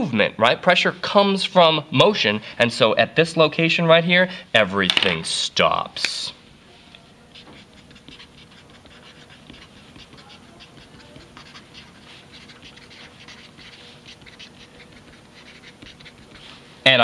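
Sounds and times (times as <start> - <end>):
marker scratching on paper: 7.0 - 16.8.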